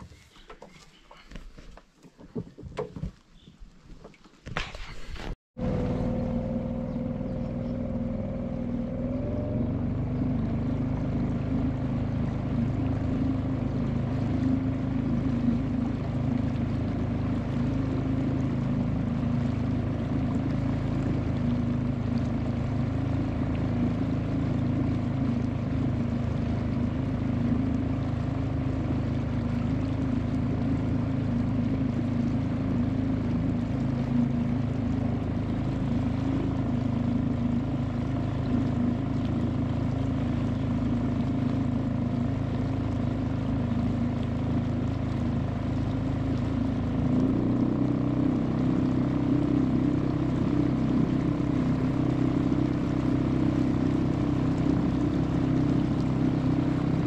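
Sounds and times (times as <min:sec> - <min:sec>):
outboard motor humming: 0:00.0 - 0:57.0.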